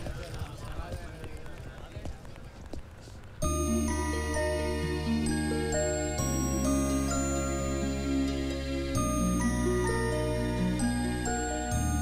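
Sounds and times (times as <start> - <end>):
footsteps on pavement: 0.0 - 3.6.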